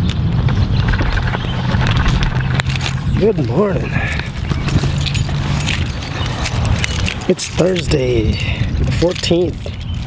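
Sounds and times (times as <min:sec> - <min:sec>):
steady low hum: 0:00.2 - 0:05.6
keys jingling: 0:01.0 - 0:10.0.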